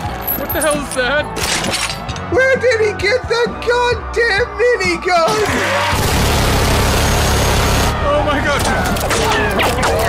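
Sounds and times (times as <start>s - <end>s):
minigun rapid fire: 5.5s - 8.0s.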